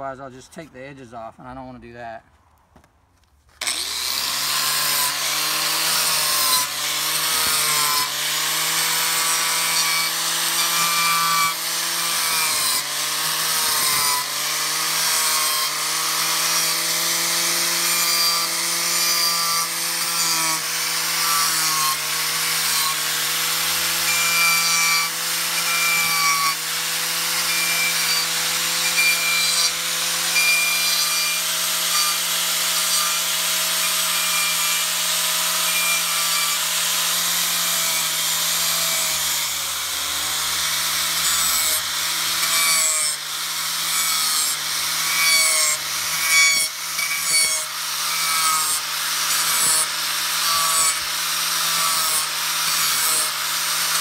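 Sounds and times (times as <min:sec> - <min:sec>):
angle grinder cutting wood: 0:03.5 - 0:54.0.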